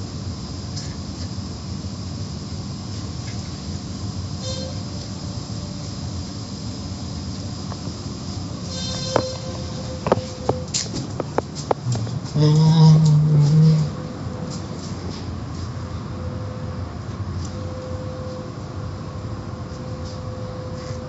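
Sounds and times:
car wash machinery rumbling: 0:00.0 - 0:21.0.

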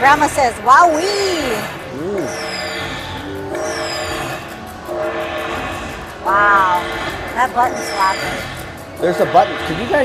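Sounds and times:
electronic chime chords: 0:00.9 - 0:10.0.

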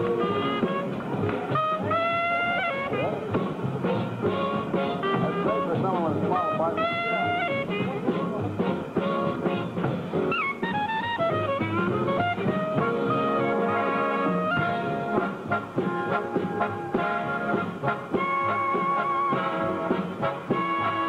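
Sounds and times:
clarinet with running phrases: 0:00.0 - 0:21.0
jazz big band playing swing: 0:00.0 - 0:21.0.

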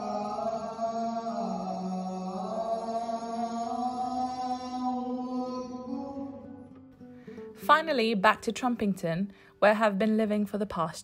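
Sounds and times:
person chanting in held notes: 0:00.0 - 0:06.4.

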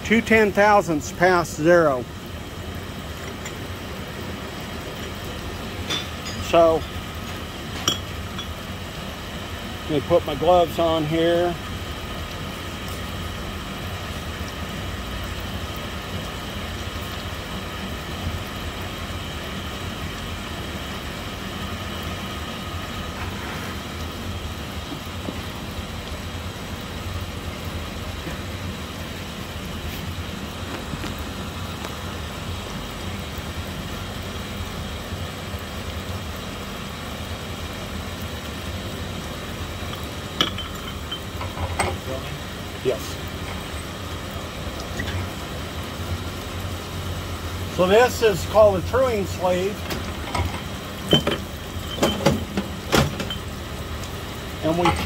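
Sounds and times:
electric motor hum and whine: 0:00.0 - 0:55.0.

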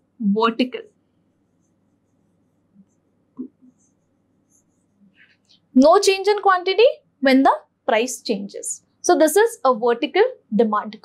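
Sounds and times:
stylus tapping and scratching on screen: 0:00.7 - 0:06.4.

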